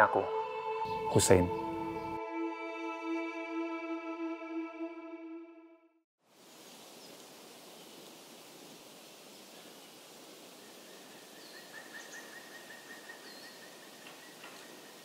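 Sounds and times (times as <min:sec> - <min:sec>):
steady background hiss: 0:06.2 - 0:15.0
bird chirps: 0:10.9 - 0:15.0.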